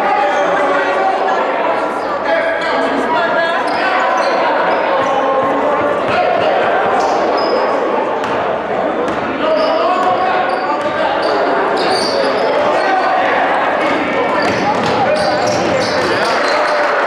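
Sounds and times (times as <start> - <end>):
chatter of many voices: 0.0 - 17.0
basketballs bouncing on hardwood: 14.4 - 16.2.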